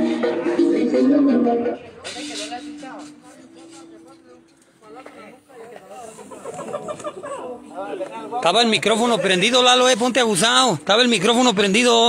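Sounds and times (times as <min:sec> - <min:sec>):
loud music from sound system: 0:00.0 - 0:02.6
scattered voices: 0:00.0 - 0:12.0.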